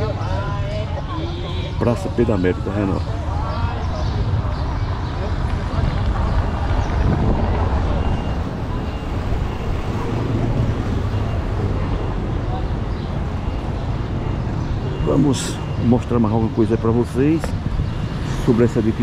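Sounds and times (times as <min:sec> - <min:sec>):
faint indistinct voices: 0:00.0 - 0:19.0
low street rumble: 0:00.0 - 0:19.0.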